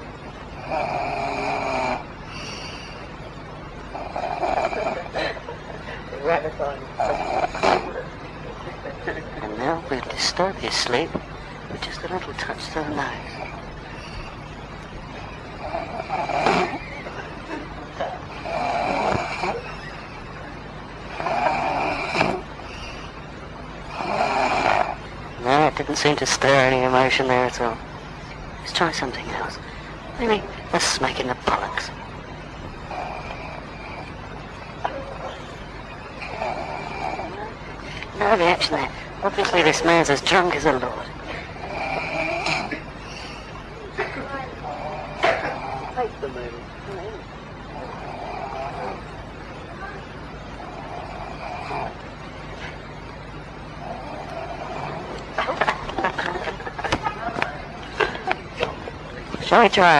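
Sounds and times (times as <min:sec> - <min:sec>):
tape hiss and hum: 0:00.0 - 0:59.9
man snoring loudly: 0:00.6 - 0:03.0, 0:03.8 - 0:05.2, 0:07.0 - 0:08.0, 0:15.6 - 0:16.9, 0:18.3 - 0:19.7, 0:21.1 - 0:23.0, 0:23.8 - 0:25.1, 0:32.9 - 0:34.2, 0:36.1 - 0:37.5, 0:41.6 - 0:42.9, 0:47.7 - 0:49.1, 0:50.6 - 0:52.0, 0:53.8 - 0:55.2
man snoring with whistle: 0:00.6 - 0:03.0, 0:15.6 - 0:17.0, 0:18.3 - 0:19.9, 0:21.1 - 0:23.0, 0:36.1 - 0:37.5.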